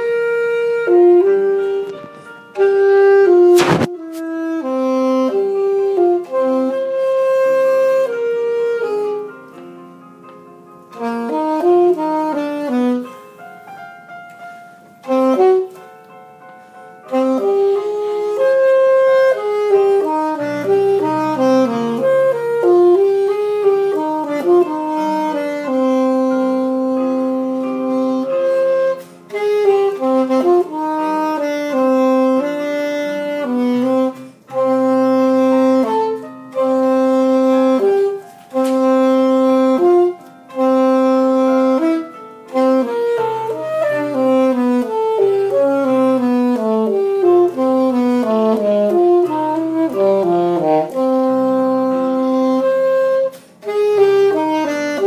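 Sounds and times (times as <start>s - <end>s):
saxophone melody: 0.0s - 55.0s.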